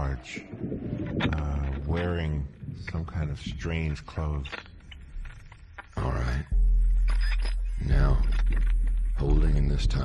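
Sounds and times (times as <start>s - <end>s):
loud low electronic drone: 6.3s - 10.0s.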